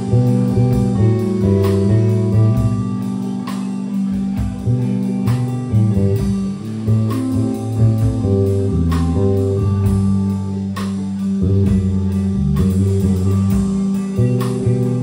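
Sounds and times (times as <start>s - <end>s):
rock band playing slow piece: 0.0s - 15.0s.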